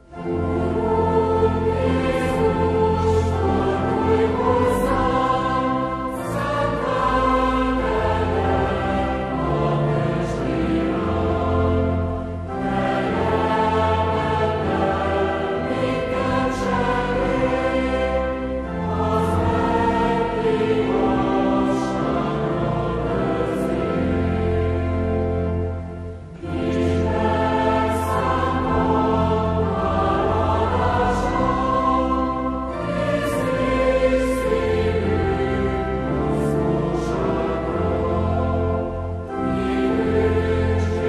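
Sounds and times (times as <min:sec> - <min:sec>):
choir singing a hymn: 0:00.0 - 0:41.0.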